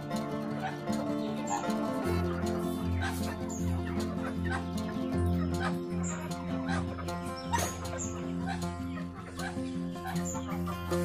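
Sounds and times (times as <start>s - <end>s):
background music with bass line: 0.0s - 11.0s
chickens clucking: 0.0s - 11.0s.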